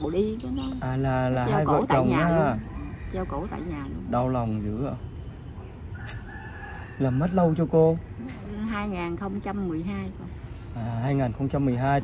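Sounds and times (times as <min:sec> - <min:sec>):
rooster crowing: 0:02.6 - 0:03.7, 0:05.9 - 0:07.8.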